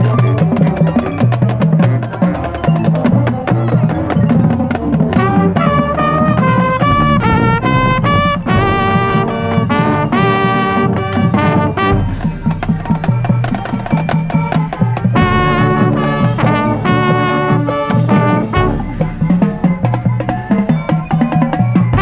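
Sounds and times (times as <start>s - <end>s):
drumline strokes: 0.0s - 22.0s
held brass chords: 5.1s - 20.7s.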